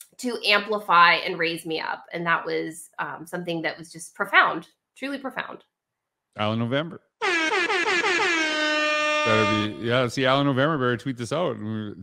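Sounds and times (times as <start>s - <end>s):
air horn blast: 7.2s - 10.3s.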